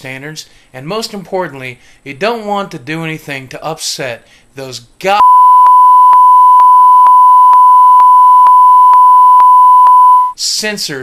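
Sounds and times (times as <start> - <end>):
censor bleep tone: 5.2 - 10.4.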